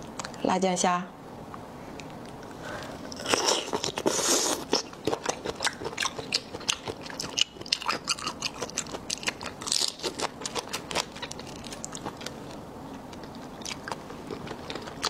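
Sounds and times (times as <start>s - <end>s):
chewing wet crackles: 2.0s - 15.0s.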